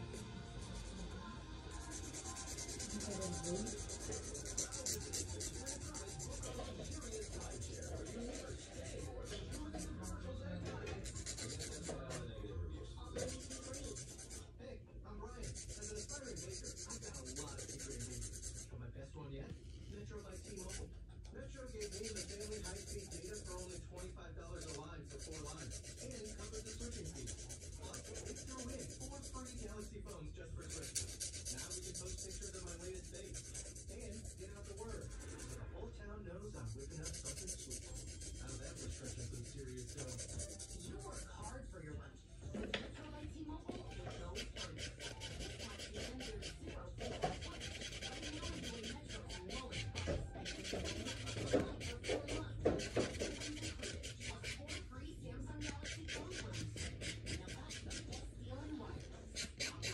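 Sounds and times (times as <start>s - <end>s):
fast rubbing or scratching: 0.0s - 12.3s, 13.0s - 14.6s, 15.4s - 18.8s, 19.6s - 20.9s, 21.5s - 41.7s, 43.7s - 59.9s.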